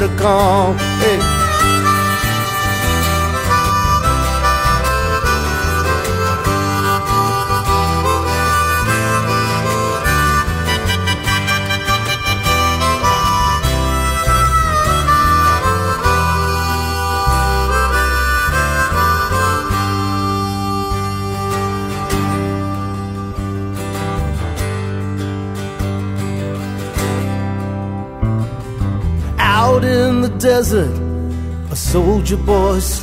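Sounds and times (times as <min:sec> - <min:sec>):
harmonica solo: 0:00.0 - 0:27.8
guitar and bass backing: 0:00.0 - 0:33.0.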